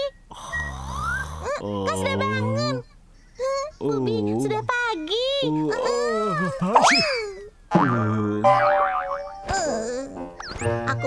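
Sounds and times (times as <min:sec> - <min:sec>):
deeper cartoon voice: 0:00.6 - 0:02.8, 0:07.8 - 0:08.6
high chirpy cartoon voice: 0:09.2 - 0:11.0.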